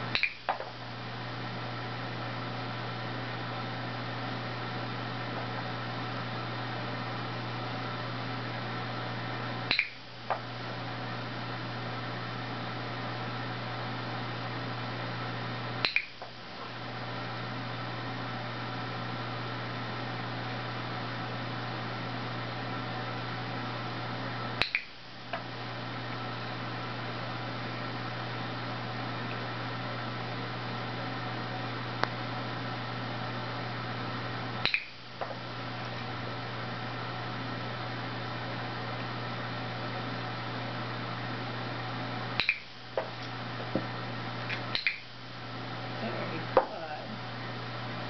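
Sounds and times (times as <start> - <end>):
steady background hum: 0.0 - 48.0
sharp clicks with ring: 9.7 - 10.0, 15.8 - 16.2, 24.6 - 24.9, 34.6 - 35.0, 42.4 - 42.7, 44.7 - 45.1.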